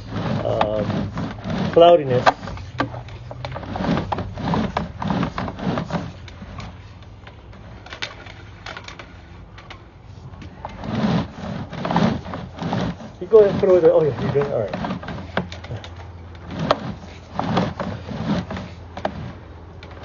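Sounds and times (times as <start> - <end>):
cable knocking and clattering: 0.0 - 9.8, 10.4 - 20.0
steady low hum: 0.0 - 20.0.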